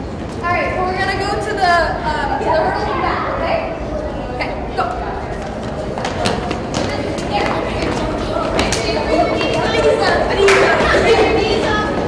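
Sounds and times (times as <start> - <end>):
children chattering: 0.4 - 12.0.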